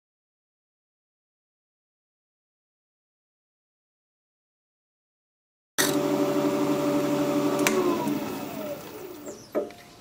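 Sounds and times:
wood lathe humming and winding down: 5.8 - 9.5.

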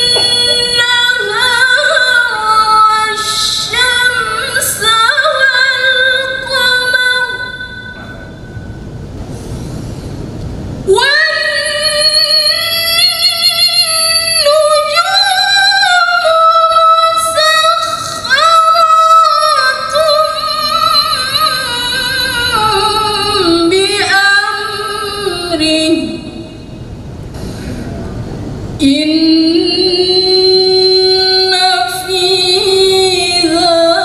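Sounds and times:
woman chanting melodically: 0.0 - 8.4, 28.8 - 34.0
woman reciting melodically: 0.0 - 8.4, 10.9 - 26.9, 28.8 - 34.0
low steady rumble: 0.0 - 34.0.

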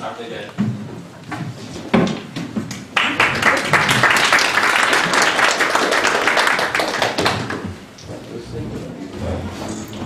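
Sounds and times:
audience applauding: 2.9 - 7.8.

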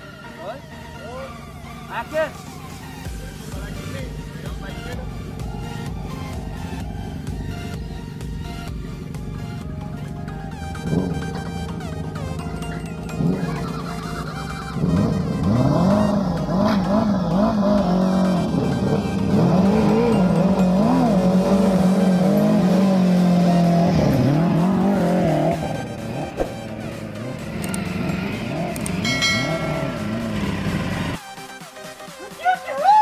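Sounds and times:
motorcycle engines revving: 0.0 - 31.2
music: 0.0 - 33.0.

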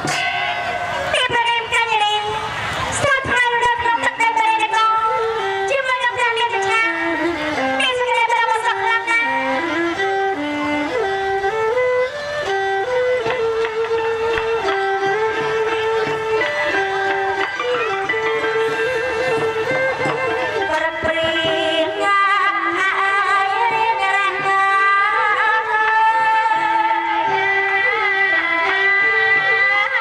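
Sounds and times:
traditional ensemble with bowed fiddle: 0.0 - 30.0
woman singing into microphone: 1.2 - 9.9, 20.5 - 30.0.

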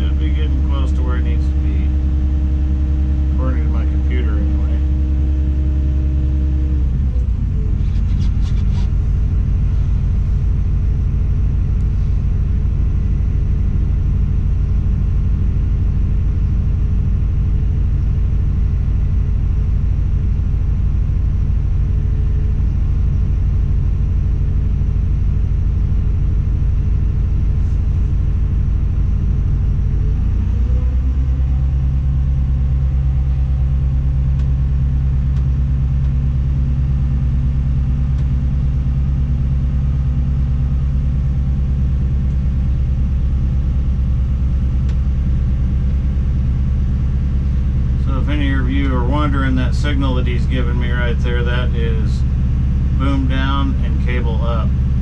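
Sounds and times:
crane diesel engine running: 0.0 - 55.0.

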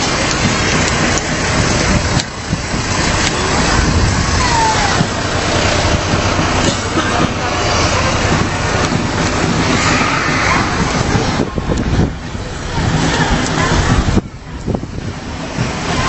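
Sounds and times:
fire truck engine rumbling: 0.0 - 16.0
street noise: 0.0 - 16.0.

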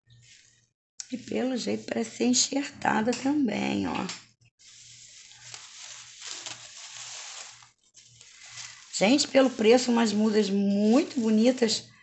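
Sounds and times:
paper rustling and crinkling: 4.6 - 11.7.

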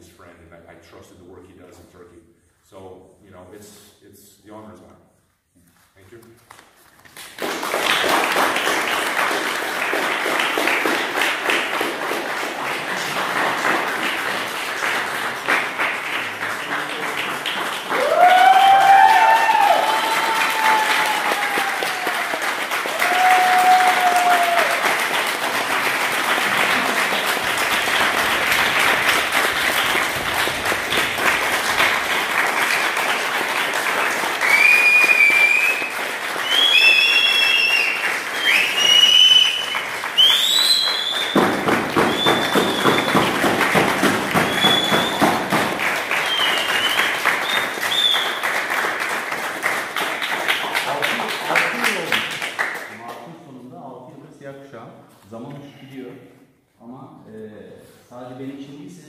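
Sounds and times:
group of people applauding: 7.0 - 53.4
cheering whoops: 17.9 - 25.0, 34.4 - 41.4
high whistles: 34.4 - 43.4, 44.4 - 45.5, 46.1 - 48.6.

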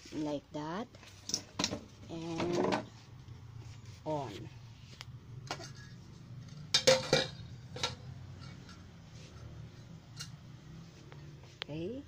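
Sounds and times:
metal pot and lid clinking: 5.5 - 8.9.

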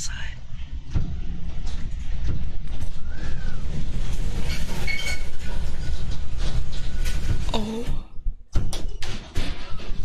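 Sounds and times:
tornado wind rumble: 0.0 - 8.2.

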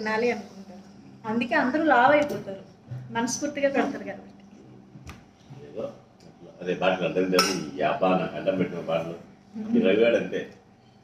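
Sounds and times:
spoon clinking on steel bowl: 7.4 - 7.6.

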